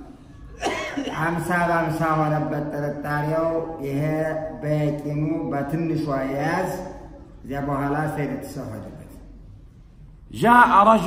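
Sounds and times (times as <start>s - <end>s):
man speaking in chant-like voice: 1.1s - 9.2s, 10.3s - 11.0s.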